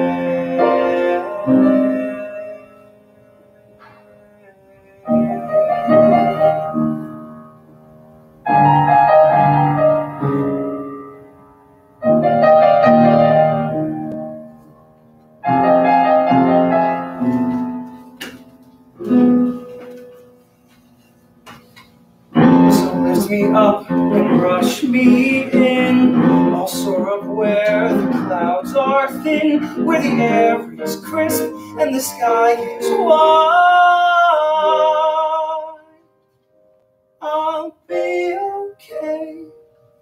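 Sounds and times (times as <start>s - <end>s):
cast singing: 0.0s - 7.2s
piano accompaniment: 0.0s - 40.0s
piano chords: 0.0s - 40.0s.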